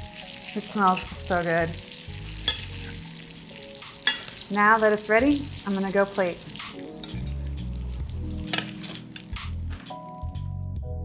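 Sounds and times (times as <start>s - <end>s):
metal tongs clicking on pan: 2.4s - 3.0s, 4.0s - 4.5s, 8.4s - 9.3s.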